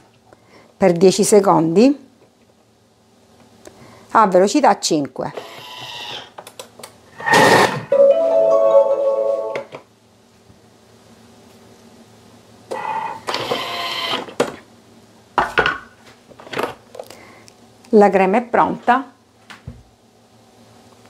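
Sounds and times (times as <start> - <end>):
blender motor whine: 5.4 - 6.3, 12.7 - 14.3.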